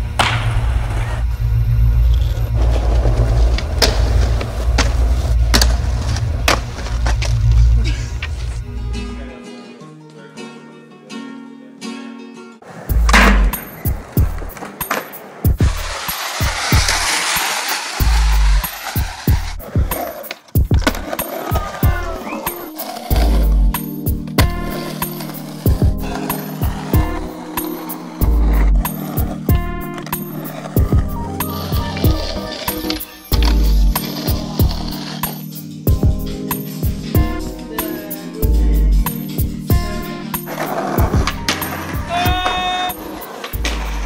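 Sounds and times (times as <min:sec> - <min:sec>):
skateboard wheels rolling on concrete: 0:00.0 - 0:09.0, 0:12.6 - 0:44.0
music with deep bass hits: 0:00.0 - 0:09.1, 0:12.9 - 0:14.5
skateboard popping and landing: 0:02.9 - 0:07.4, 0:12.6 - 0:23.5, 0:40.4 - 0:44.0.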